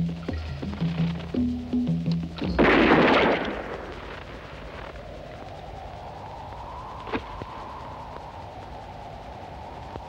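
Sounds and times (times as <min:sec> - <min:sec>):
low music notes: 0:00.0 - 0:02.9
faint rising drone: 0:03.4 - 0:10.0.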